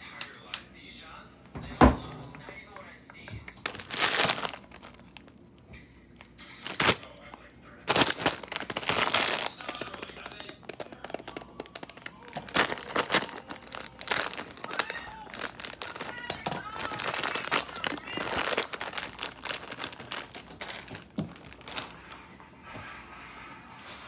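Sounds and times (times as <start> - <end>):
plastic bag crinkling: 3.6 - 22.2.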